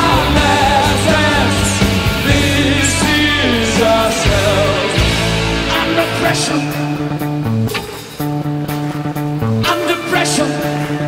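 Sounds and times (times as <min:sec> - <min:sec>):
bass guitar: 0:00.0 - 0:11.0
electric guitar: 0:00.0 - 0:11.0.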